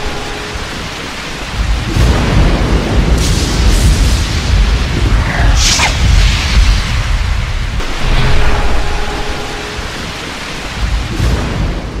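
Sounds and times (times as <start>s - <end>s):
steady rain hiss: 0.0s - 12.0s
deep rolling thunder: 1.5s - 9.7s.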